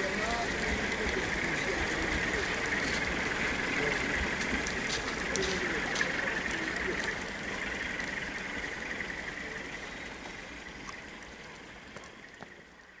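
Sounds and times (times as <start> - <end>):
train wheels rumbling on rails: 0.0 - 12.6.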